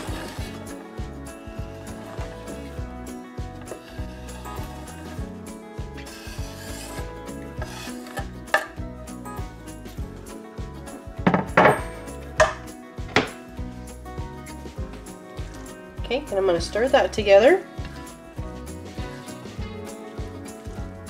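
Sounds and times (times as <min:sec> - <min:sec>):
cutting board scraping a frying pan: 0:00.0 - 0:00.8, 0:01.4 - 0:02.9, 0:03.6 - 0:05.2, 0:06.0 - 0:08.8, 0:18.9 - 0:19.6
background music: 0:00.0 - 0:21.0.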